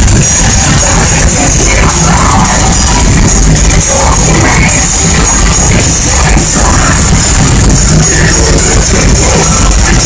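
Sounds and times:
live metal band with distorted guitars: 0.0 - 10.0.

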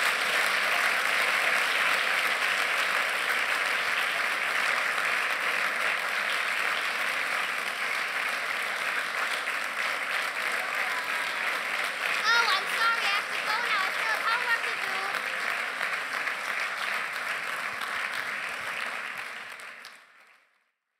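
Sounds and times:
audience applauding: 0.0 - 20.7.

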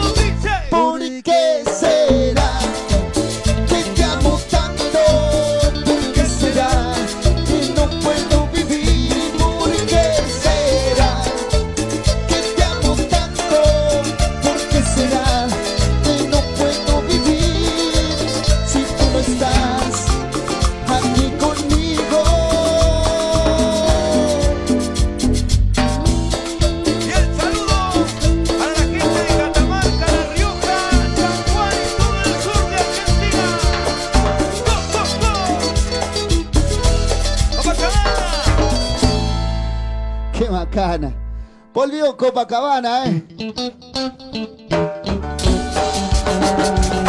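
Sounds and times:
drum kit: 0.0 - 0.8, 1.6 - 40.1, 44.7 - 47.0
electric guitar: 0.0 - 0.8, 1.8 - 40.4, 43.0 - 47.0
congas: 0.0 - 40.1, 44.7 - 47.0
live band playing: 0.0 - 40.8, 43.2 - 47.0
keyboard: 0.0 - 47.0
sliding lead melody: 2.3 - 41.7, 43.4 - 47.0
metal shaker: 5.4 - 39.1.

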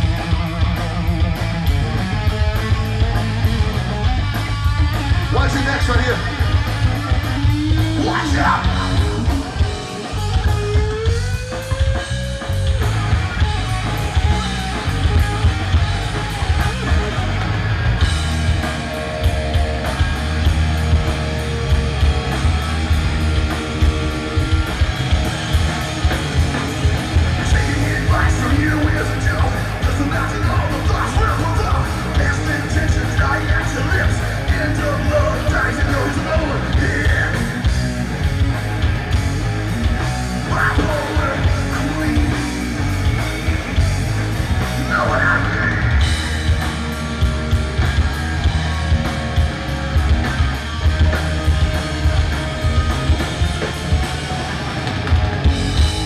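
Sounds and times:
live rock band playing loudly: 0.0 - 56.0
vocals over band: 2.1 - 56.0.

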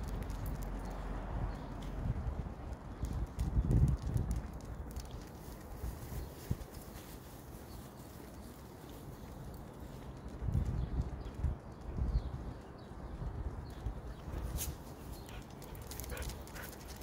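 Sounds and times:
dog paws on concrete: 0.0 - 17.0.

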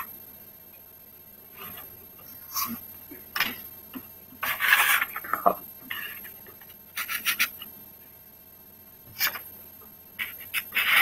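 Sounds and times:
rubbing and scraping: 4.4 - 6.4, 10.2 - 11.0.

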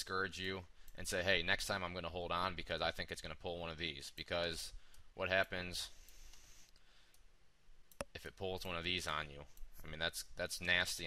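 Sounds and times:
computer mouse clicks: 6.0 - 7.3.

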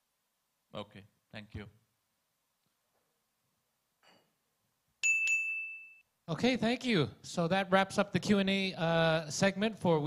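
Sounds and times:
timer chime dinging: 5.0 - 6.0.

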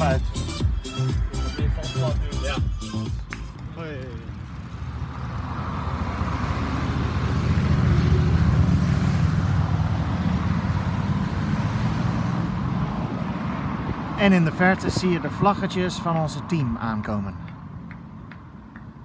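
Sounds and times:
van engine and tyre noise: 0.0 - 19.0.

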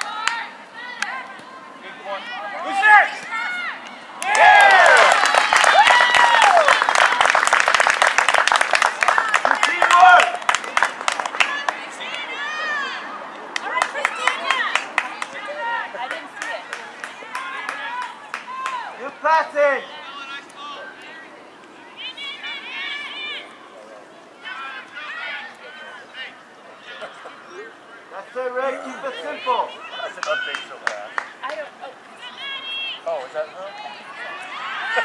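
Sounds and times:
crowd cheering and clapping: 0.0 - 1.6, 2.6 - 21.1, 29.2 - 33.0, 34.0 - 35.0
scattered shouts: 0.0 - 7.4.

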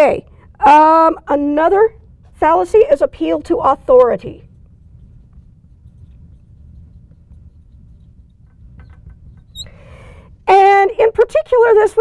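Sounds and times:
low steady hum: 0.0 - 12.0
marker squeaking on glass board: 4.0 - 9.9.

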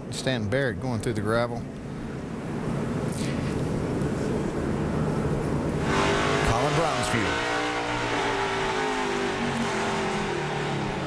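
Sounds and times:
race car engine: 2.6 - 11.0.

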